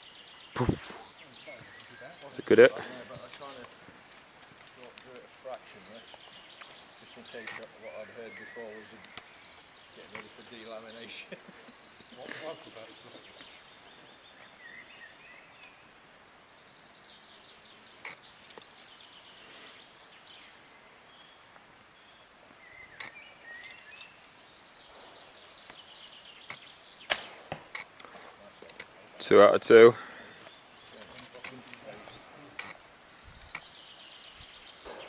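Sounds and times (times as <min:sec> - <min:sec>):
faint outdoor background: 0:00.0 - 0:35.0
bowstring snapping: 0:26.5 - 0:27.9
arrow knocking into target: 0:27.1 - 0:27.8.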